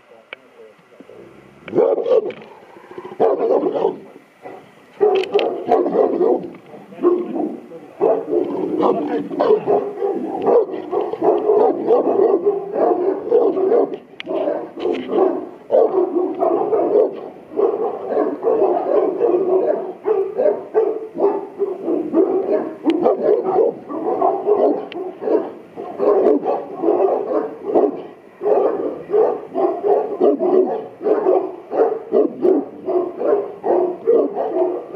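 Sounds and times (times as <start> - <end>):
dog barking aggressively: 1.7 - 34.9.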